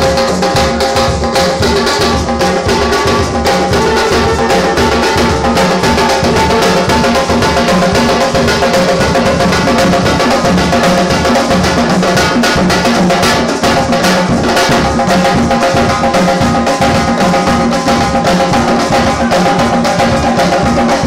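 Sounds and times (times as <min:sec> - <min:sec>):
djembe drums playing: 0:00.0 - 0:21.0.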